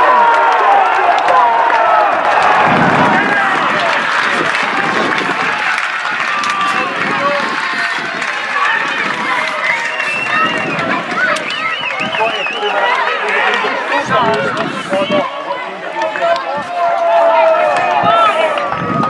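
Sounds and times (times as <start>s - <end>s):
many voices talking and calling: 0.0s - 19.0s.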